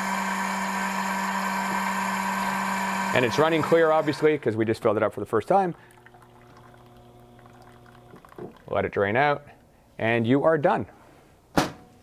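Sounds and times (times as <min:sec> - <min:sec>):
water running into a cup: 0:00.0 - 0:08.9.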